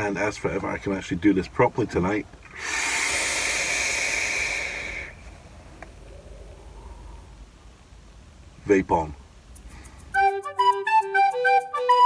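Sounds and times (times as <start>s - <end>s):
vape draw hiss: 2.5s - 5.3s.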